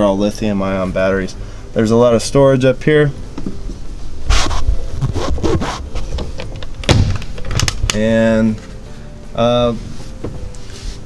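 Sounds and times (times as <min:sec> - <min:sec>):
cabinet door thunk closing: 0:06.8 - 0:07.7.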